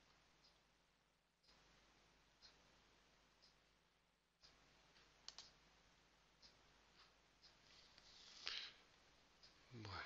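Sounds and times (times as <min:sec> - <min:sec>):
low hiss: 0:00.0 - 0:10.0
computer mouse clicks: 0:04.4 - 0:05.6.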